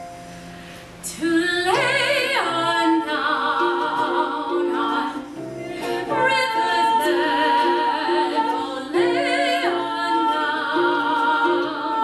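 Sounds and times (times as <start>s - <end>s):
woman singing with vibrato: 1.0s - 12.0s
plucked ukulele: 1.2s - 12.0s
plucked harp: 1.3s - 12.0s.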